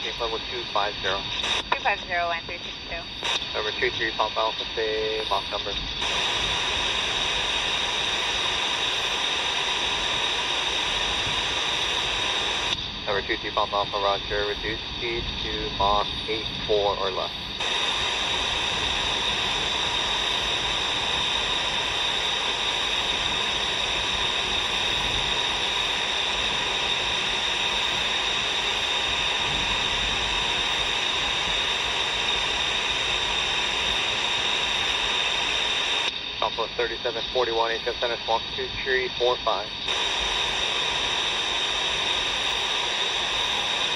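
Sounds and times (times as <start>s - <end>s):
radio static hiss: 0.0s - 43.9s.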